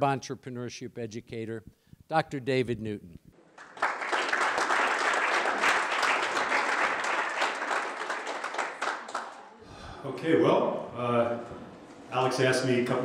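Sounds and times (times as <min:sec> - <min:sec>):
audience applauding: 0:03.6 - 0:09.6.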